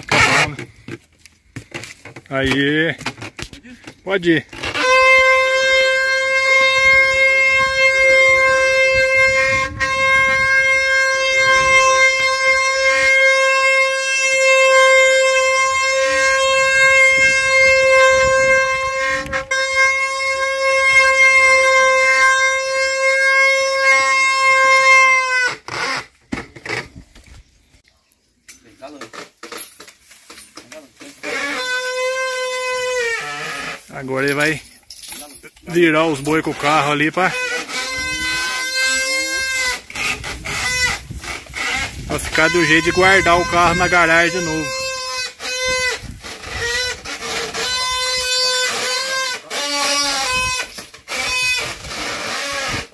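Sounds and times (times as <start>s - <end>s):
wooden cart axle singing: 28.4s - 52.9s.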